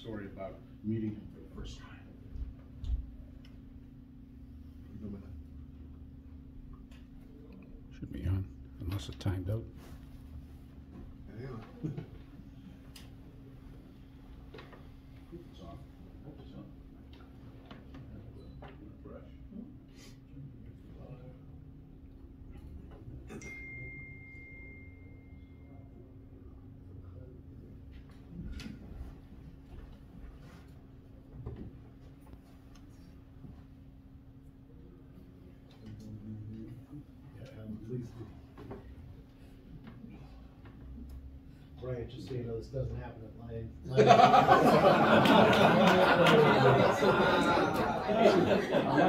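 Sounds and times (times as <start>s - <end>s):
low electrical hum: 0.0s - 49.0s
man's footsteps across a room: 9.0s - 15.3s, 27.8s - 34.0s
high ringing tone: 23.3s - 26.0s.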